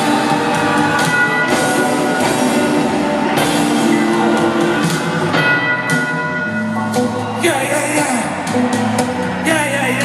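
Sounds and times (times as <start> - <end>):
bell ringing: 0.0 - 9.6
live rock band playing: 0.0 - 10.0.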